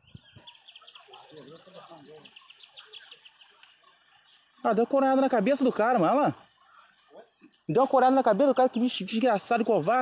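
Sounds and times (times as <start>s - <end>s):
faint distant voices: 0.2s - 10.0s.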